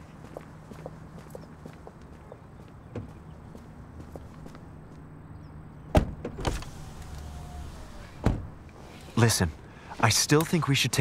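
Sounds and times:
car door shutting: 5.9s - 8.5s.

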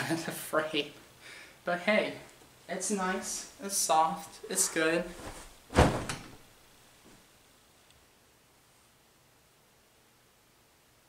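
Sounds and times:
body thumping onto mattress: 5.1s - 6.5s.

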